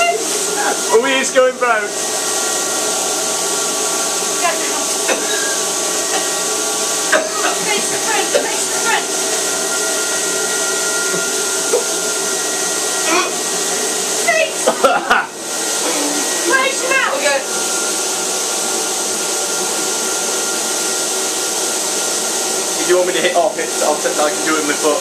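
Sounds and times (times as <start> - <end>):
spray machine turbine whining: 0.0 - 25.0.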